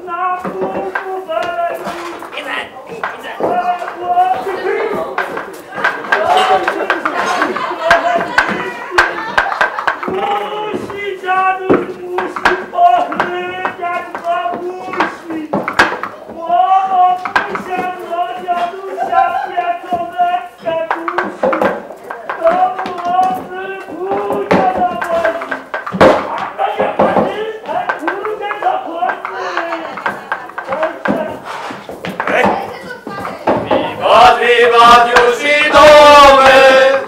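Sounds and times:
voices talking and calling out: 0.0s - 37.0s
sharp knocks and clacks: 0.2s - 36.8s.

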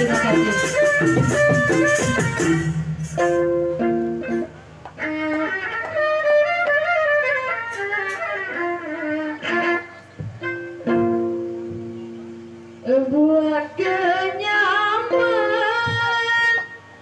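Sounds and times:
string instrument melody: 0.0s - 17.0s.

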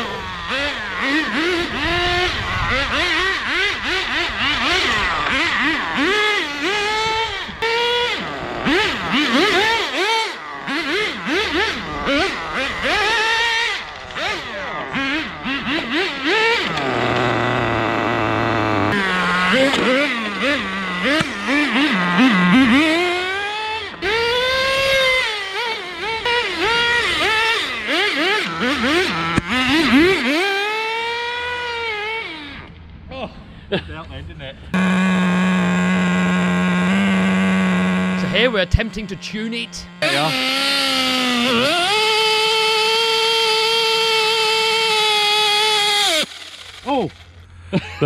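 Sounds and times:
small engine revving: 0.0s - 33.1s, 33.7s - 48.0s.

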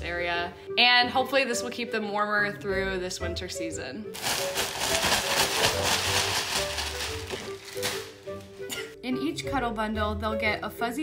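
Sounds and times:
plastic bags rustling: 4.2s - 8.7s.

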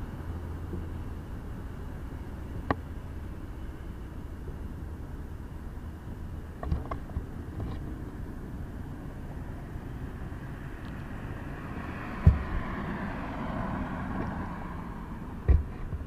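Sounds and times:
traffic noise: 0.0s - 16.0s
vehicle tyres passing: 9.6s - 16.0s.

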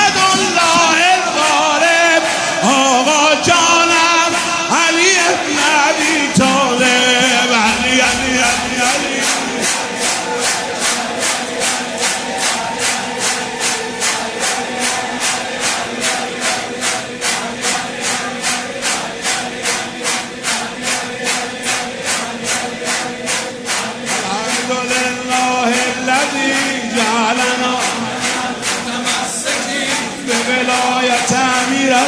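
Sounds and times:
crowd chanting devotional song: 0.0s - 32.0s
rhythmic clapping: 0.0s - 32.0s.

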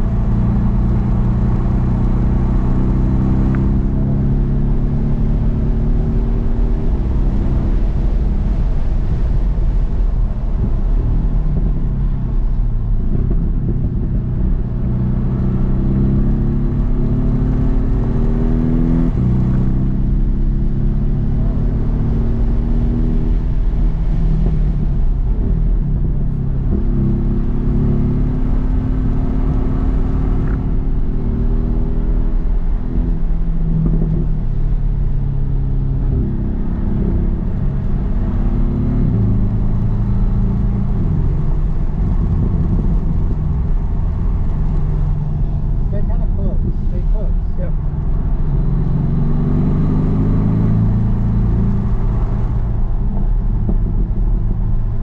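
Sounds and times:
car engine accelerating and shifting: 0.0s - 55.0s.

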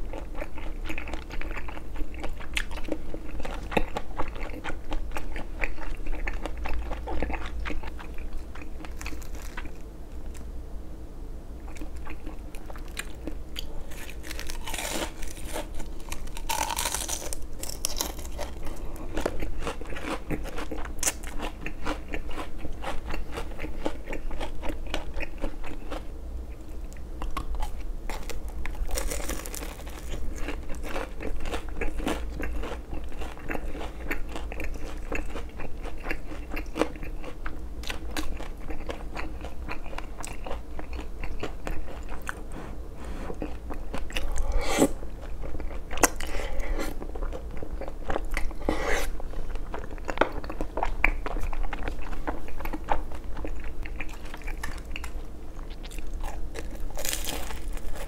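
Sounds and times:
crunchy bites of fried food: 5.7s - 10.5s, 11.8s - 26.0s, 27.2s - 42.4s, 50.1s - 58.0s.

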